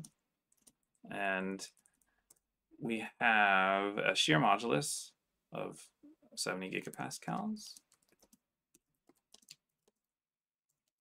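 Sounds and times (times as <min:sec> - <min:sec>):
keyboard typing: 0:00.0 - 0:01.0, 0:06.8 - 0:10.1, 0:10.7 - 0:11.0.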